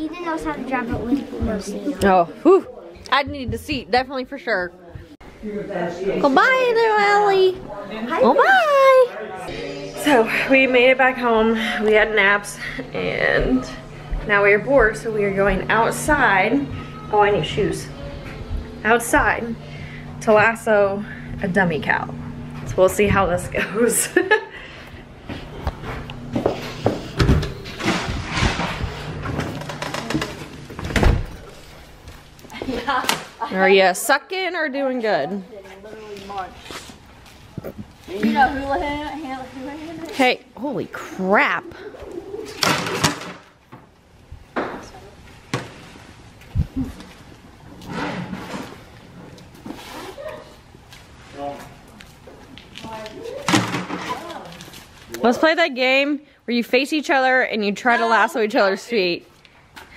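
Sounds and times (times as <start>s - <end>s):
footsteps: 0.3s - 2.2s, 2.9s - 5.2s, 9.5s - 24.1s, 24.7s - 33.4s, 35.5s - 40.5s
people laughing: 23.5s - 24.9s
doors opening and shutting: 25.1s - 32.3s.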